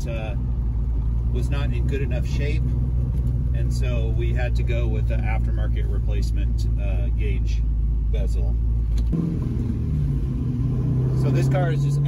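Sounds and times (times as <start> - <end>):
car exhaust drone from inside cabin: 0.0 - 12.0.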